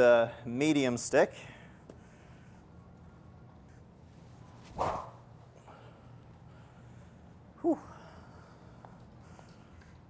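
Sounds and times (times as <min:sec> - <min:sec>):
stick swishing through air: 0:04.5 - 0:05.2.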